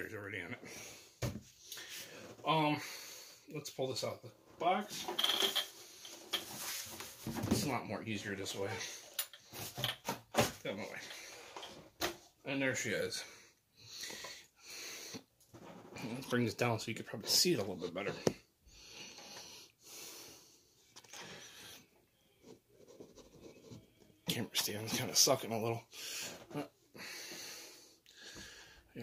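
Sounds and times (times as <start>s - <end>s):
person breathing close to microphone: 0.6s - 3.5s, 25.9s - 28.9s.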